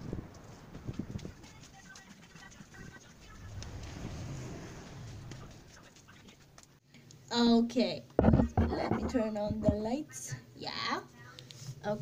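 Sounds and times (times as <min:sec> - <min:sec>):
plastic cups knocking: 0:08.2 - 0:09.9.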